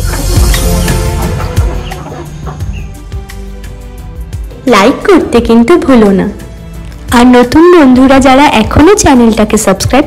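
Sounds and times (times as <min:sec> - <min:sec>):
chickens clucking: 0:00.0 - 0:03.1
background music: 0:00.0 - 0:10.0.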